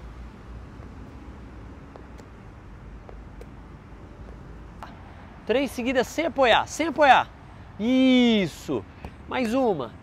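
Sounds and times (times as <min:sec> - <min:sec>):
low outdoor rumble: 0:00.0 - 0:07.7.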